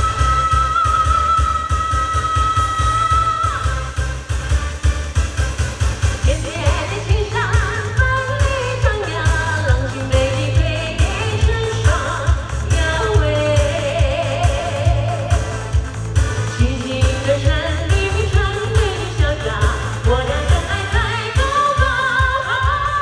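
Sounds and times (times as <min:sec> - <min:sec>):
woman singing pop song: 0:00.0 - 0:04.4, 0:06.2 - 0:23.0
backing track with bass beat: 0:00.0 - 0:23.0.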